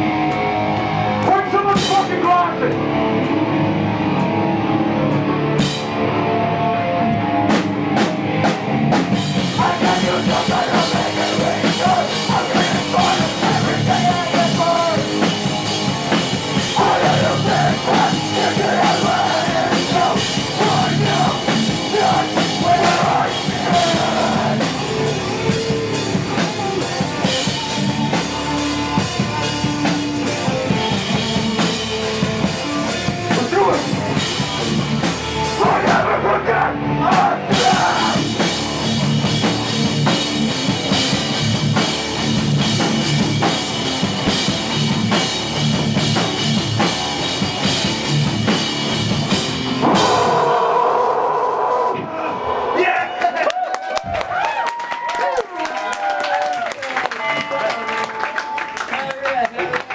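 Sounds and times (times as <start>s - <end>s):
drum kit: 0.0s - 52.2s
electric bass: 0.0s - 52.8s
shouted vocals: 16.7s - 24.8s, 35.6s - 38.4s, 49.8s - 56.8s.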